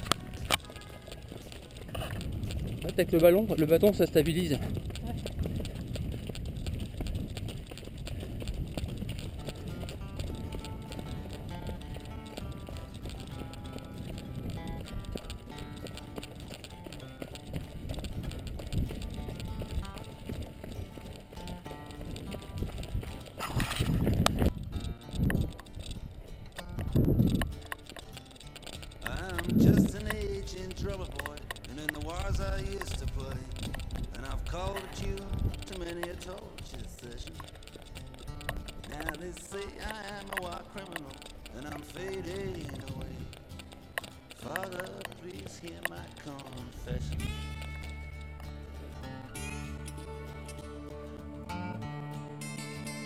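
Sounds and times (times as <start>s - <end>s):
steady low rumble: 0.0s - 26.2s, 28.8s - 40.2s
wind buffeting microphone: 0.0s - 50.2s
running footsteps on dirt: 0.0s - 53.0s.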